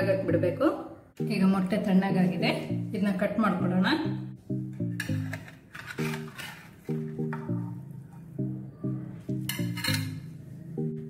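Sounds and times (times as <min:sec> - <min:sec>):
plucked background music: 0:00.0 - 0:11.0
knife scraping metal tin: 0:05.0 - 0:07.0, 0:09.5 - 0:10.2
tin clinking on ceramic plate: 0:09.5 - 0:10.2.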